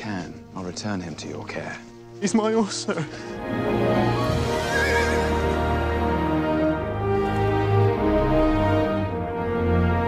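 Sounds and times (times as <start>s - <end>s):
orchestral film score: 0.0s - 10.0s
horse whinnying: 3.6s - 6.0s.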